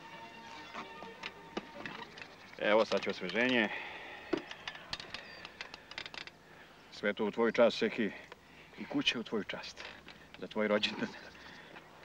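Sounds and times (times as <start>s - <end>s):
objects clicking and knocking: 0.9s - 3.6s, 4.3s - 6.4s.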